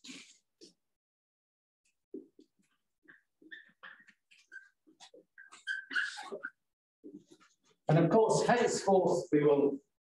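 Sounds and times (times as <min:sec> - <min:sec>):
marker squeaking on whiteboard: 0:02.3 - 0:07.8.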